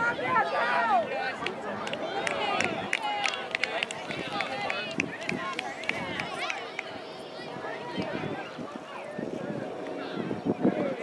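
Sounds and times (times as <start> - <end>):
chatter of spectators and children: 0.0 - 11.0.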